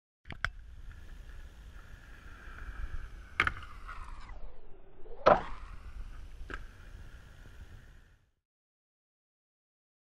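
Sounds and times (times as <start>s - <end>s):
skate wheels rolling on asphalt: 0.4s - 8.3s.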